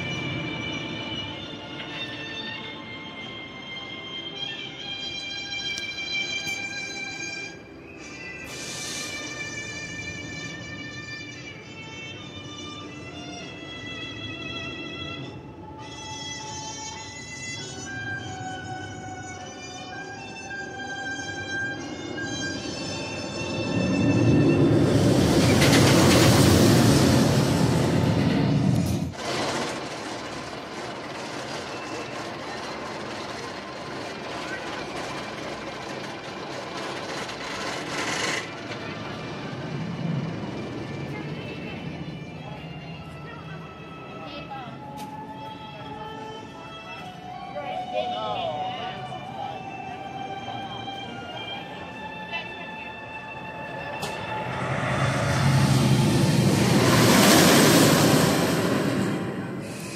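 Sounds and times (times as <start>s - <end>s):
background music: 0.0s - 25.2s, 39.7s - 55.6s
roller coaster train roaring: 0.0s - 59.9s
rushing noise: 21.8s - 41.0s, 53.0s - 59.9s.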